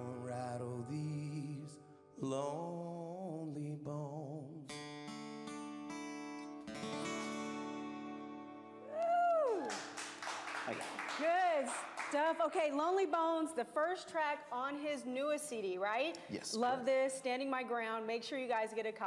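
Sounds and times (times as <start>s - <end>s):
acoustic guitars playing: 0.0s - 3.4s, 4.2s - 9.0s
person whooping: 8.8s - 9.9s
people clapping: 8.8s - 12.6s.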